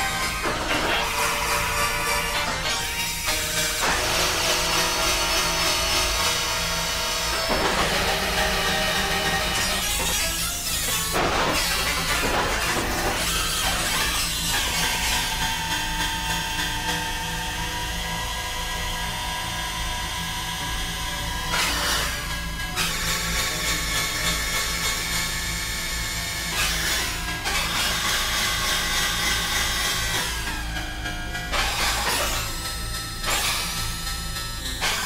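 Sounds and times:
synthesizer drone: 0:00.0 - 0:15.8
constant low hum: 0:00.0 - 0:35.0
grinding drill-like noise: 0:00.0 - 0:35.0.

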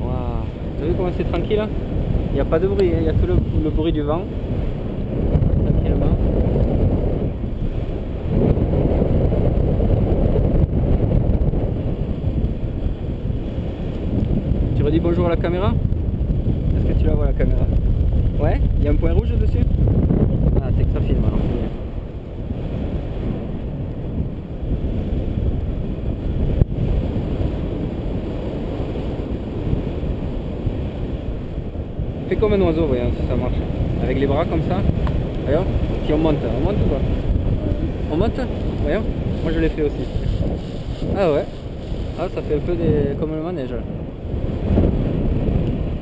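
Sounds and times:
wind rushing over microphone: 0:00.0 - 0:46.0.

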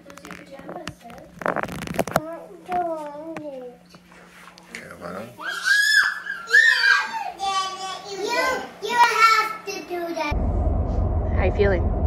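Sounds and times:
child shrieking: 0:05.4 - 0:07.5.

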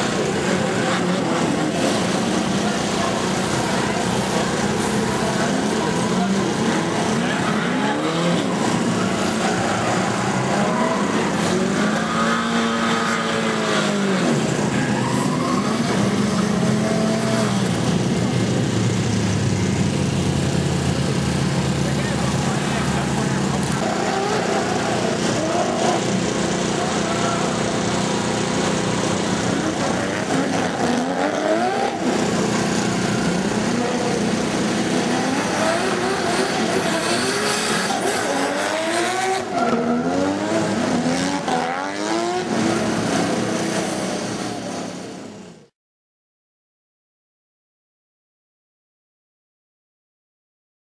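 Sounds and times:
car engines revving hard: 0:00.0 - 0:45.6
tyres squealing: 0:14.7 - 0:16.4.

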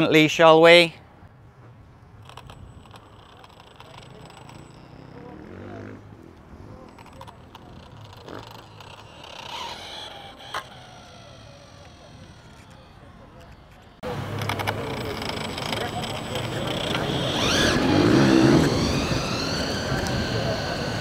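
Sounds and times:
electric motor whine: 0:07.9 - 0:21.0.

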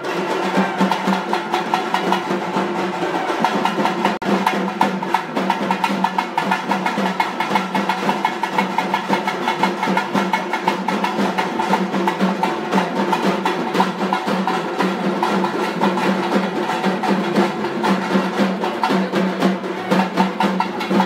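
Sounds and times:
drum troupe playing fast rhythm: 0:00.0 - 0:21.0.

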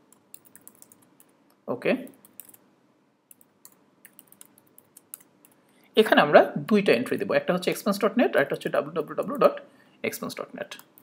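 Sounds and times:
computer keyboard typing: 0:00.1 - 0:01.3, 0:02.1 - 0:02.6, 0:03.3 - 0:05.6.

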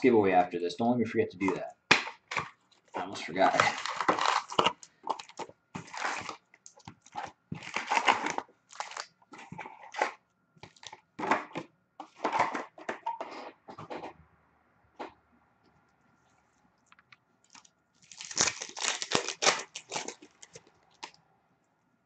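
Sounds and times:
foil wrappers crinkling: 0:02.2 - 0:11.0, 0:17.5 - 0:21.2
cardboard box tearing: 0:03.0 - 0:06.4, 0:07.0 - 0:10.1, 0:18.1 - 0:20.6.

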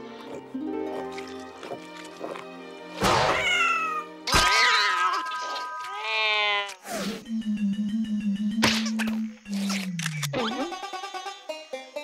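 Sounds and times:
background music: 0:00.0 - 0:04.9
cartoon cat-like yowling cries: 0:03.2 - 0:06.7.

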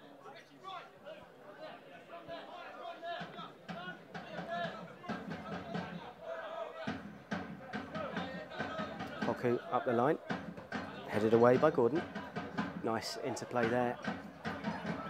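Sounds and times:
spectators chattering: 0:00.0 - 0:15.0
music: 0:03.2 - 0:06.2, 0:06.8 - 0:15.0.

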